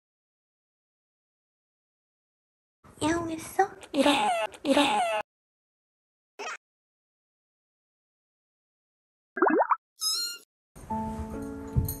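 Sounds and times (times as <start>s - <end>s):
cartoon plop: 9.4s - 10.4s.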